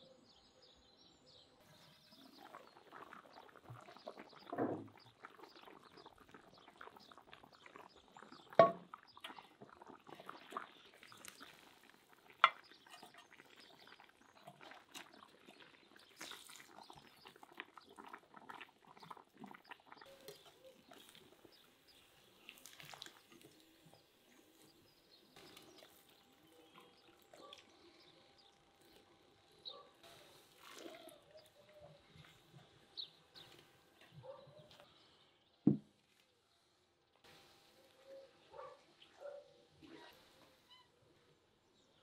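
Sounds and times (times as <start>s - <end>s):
metal skimmer clinking: 8.6s - 8.9s.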